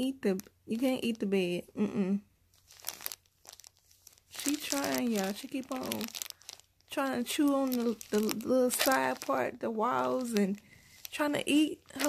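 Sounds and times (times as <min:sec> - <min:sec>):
fabric and bedding rustling: 0:02.6 - 0:12.0.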